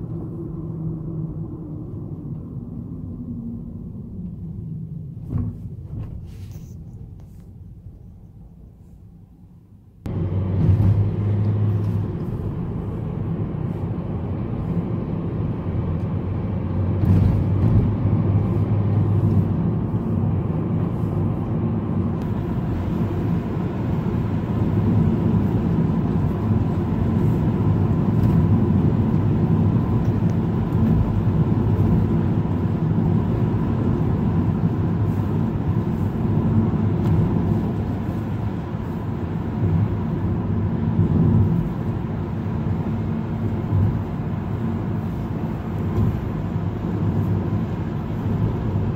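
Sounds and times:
car engine and road noise: 0.0 - 48.9.

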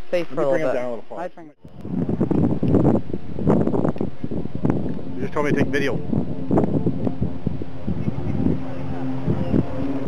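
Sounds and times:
wind buffeting microphone: 1.6 - 10.0.

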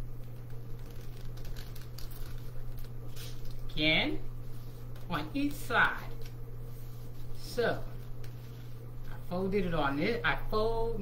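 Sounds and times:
steady low hum: 0.0 - 11.0
paper rustling and crinkling: 0.1 - 3.8, 5.9 - 9.2.

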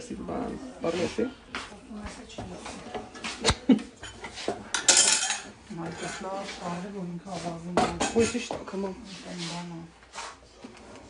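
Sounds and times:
wooden spoon scraping a pan: 0.8 - 11.0.

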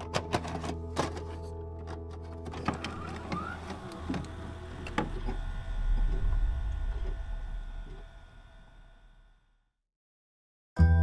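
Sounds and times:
deep bass rumble: 4.3 - 9.6.

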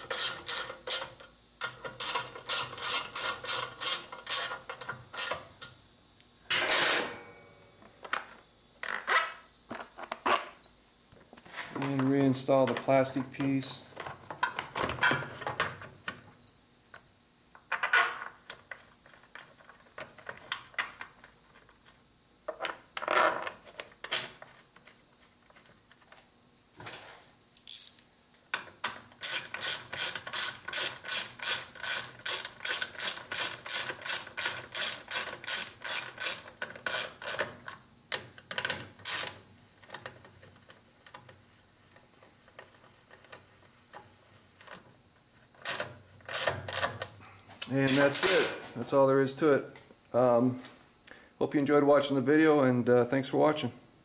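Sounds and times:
socket ratchet clicking: 27.6 - 28.0, 28.8 - 37.5, 38.1 - 39.4, 45.6 - 47.0.

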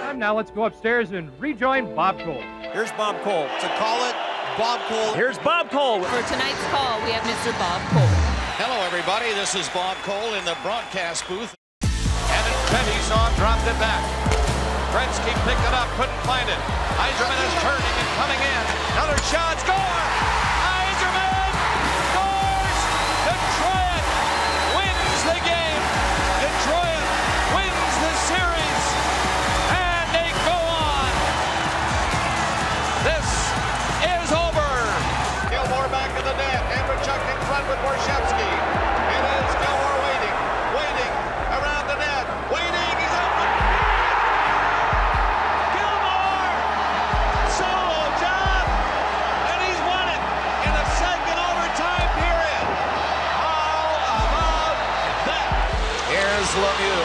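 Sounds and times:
crowd cheering and yelling: 2.6 - 57.0.

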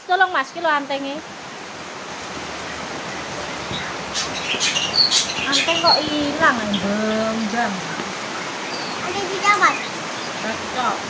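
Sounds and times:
rain falling on roof: 0.0 - 11.0.

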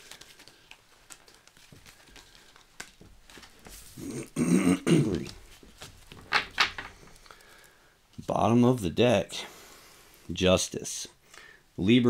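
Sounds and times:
cards being handled: 0.0 - 4.0, 5.1 - 8.2
man clearing his throat: 4.0 - 5.3.

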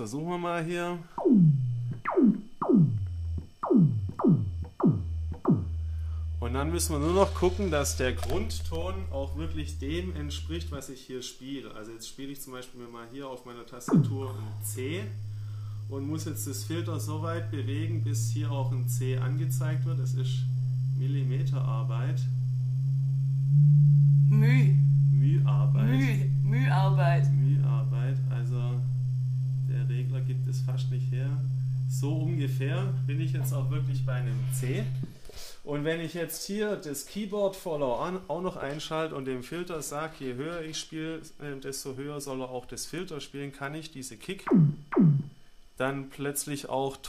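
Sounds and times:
low steady hum: 0.0 - 47.0
synth kick drum pitch drops: 1.1 - 10.9, 13.8 - 35.2, 44.5 - 45.4.

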